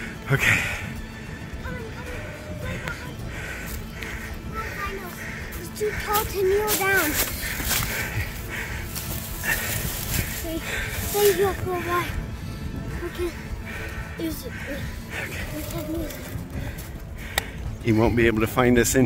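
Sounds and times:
background music with soft pulse: 0:00.0 - 0:19.0.

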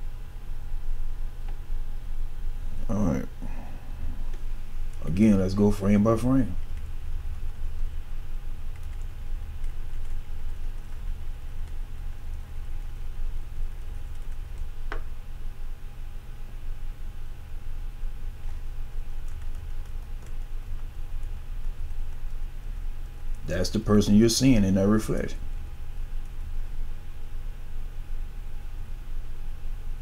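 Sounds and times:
steady low hum: 0:00.0 - 0:30.0
keyboard keys clicking: 0:08.7 - 0:10.2, 0:19.2 - 0:20.5.

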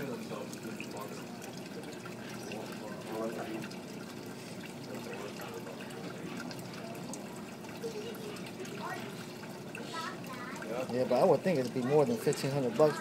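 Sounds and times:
faint voices: 0:00.0 - 0:13.0
water trickling and splashing: 0:00.0 - 0:13.0.

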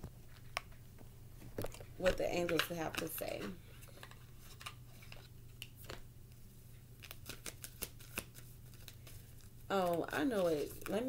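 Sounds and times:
steady low hum: 0:00.0 - 0:11.0
cards rustling: 0:01.6 - 0:06.4, 0:07.0 - 0:11.0.

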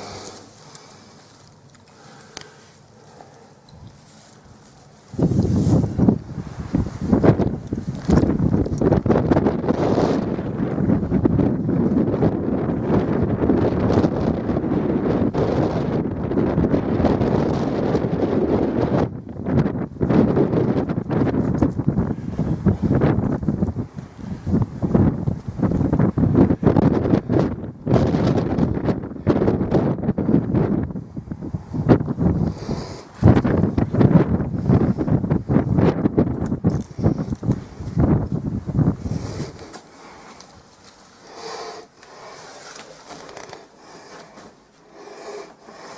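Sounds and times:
wind buffeting microphone: 0:05.0 - 0:44.4.

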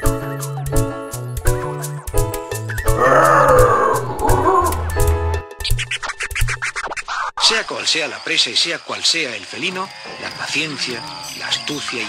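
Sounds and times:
animal-like call: 0:02.9 - 0:05.0.

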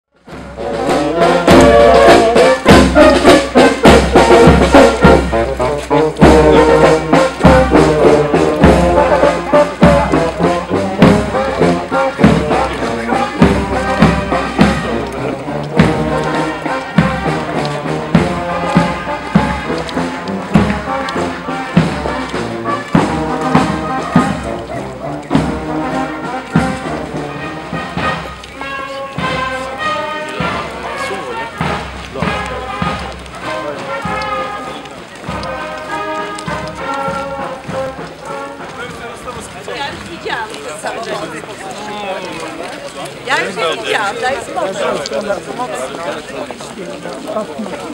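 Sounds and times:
brass band playing a march: 0:00.2 - 0:47.9
steady drum beat: 0:00.3 - 0:42.2.

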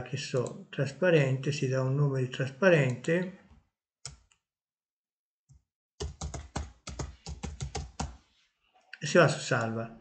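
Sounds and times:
typing on computer keyboard: 0:06.0 - 0:08.2.

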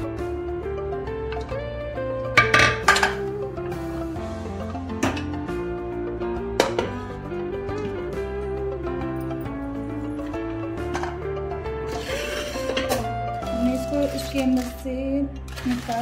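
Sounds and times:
background music melody: 0:00.0 - 0:16.0
metal pot clinking: 0:02.4 - 0:03.3.

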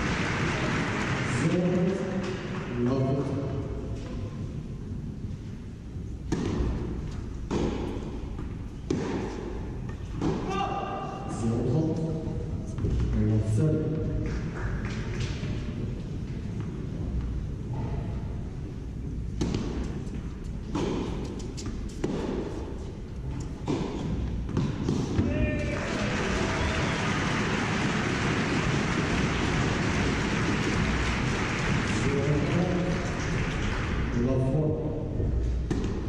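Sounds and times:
crowd applauding: 0:00.0 - 0:01.6, 0:25.6 - 0:34.2
tennis ball bouncing: 0:06.2 - 0:10.6, 0:19.1 - 0:25.3, 0:35.5 - 0:36.0
racket hitting tennis ball: 0:06.2 - 0:11.0, 0:19.2 - 0:25.4, 0:35.5 - 0:36.0.

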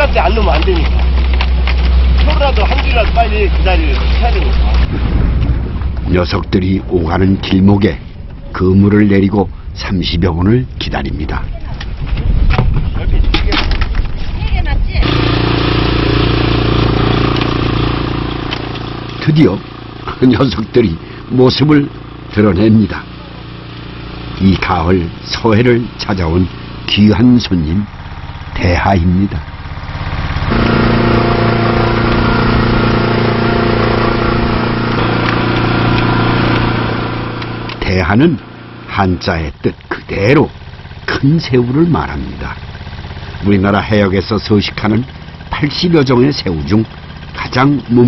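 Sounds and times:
voices: 0:00.0 - 0:04.9, 0:14.4 - 0:15.2, 0:19.1 - 0:29.5, 0:37.4 - 0:42.7
boat engine droning: 0:00.0 - 0:12.0, 0:13.1 - 0:48.0.

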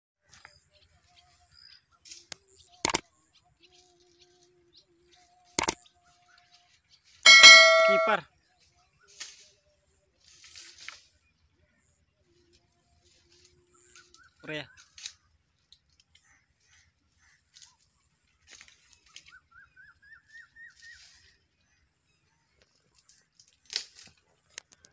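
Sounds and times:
bell notification chime: 0:07.3 - 0:08.2
sharp click: 0:07.3 - 0:08.2.

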